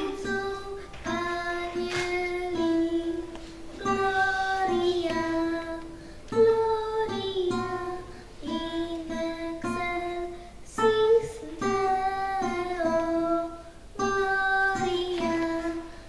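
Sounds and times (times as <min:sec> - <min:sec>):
girl singing a carol: 0:00.0 - 0:16.0
plucked acoustic guitar: 0:00.0 - 0:16.0.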